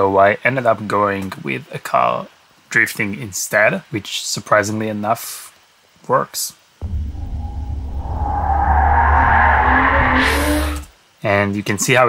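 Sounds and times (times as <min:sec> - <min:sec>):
deep steady rumble: 0:06.8 - 0:10.9.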